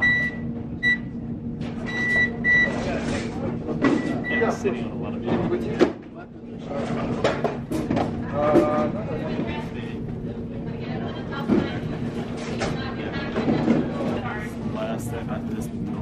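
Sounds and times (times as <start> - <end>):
steady low hum: 0.0 - 16.0
voices: 1.9 - 16.0
clatter and knocks: 6.8 - 8.7.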